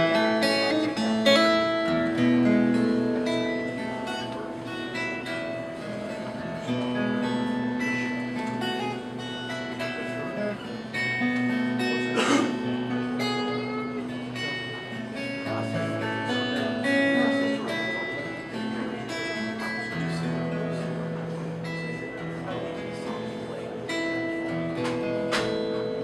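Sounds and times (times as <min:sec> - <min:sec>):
acoustic guitar playing: 0:00.0 - 0:26.0.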